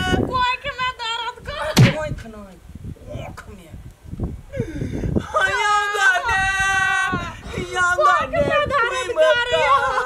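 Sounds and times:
loud sharp thump: 0:01.8 - 0:02.1.

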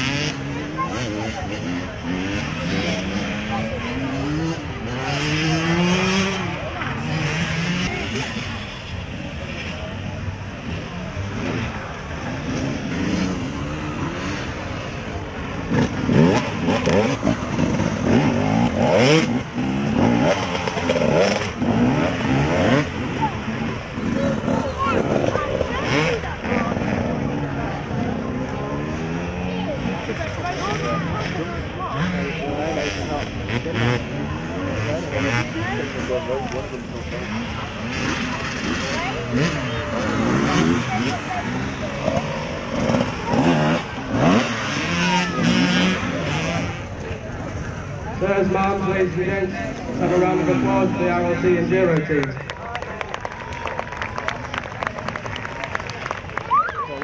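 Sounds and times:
dirt bike engines revving: 0:00.0 - 0:57.0
voices in background: 0:00.0 - 0:57.0.

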